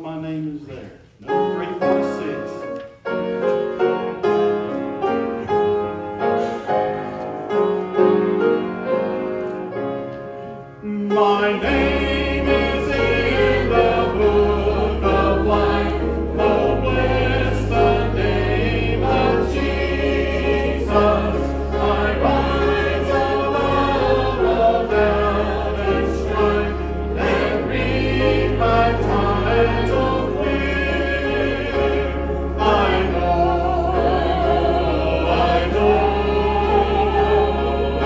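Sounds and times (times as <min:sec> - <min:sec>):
congregation singing a hymn: 0:00.0 - 0:38.0.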